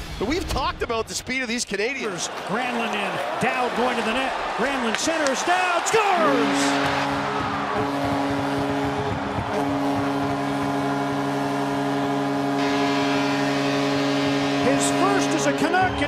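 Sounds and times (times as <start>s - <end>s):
crowd cheering: 1.8s - 16.0s
goal horn steady tone: 6.0s - 16.0s.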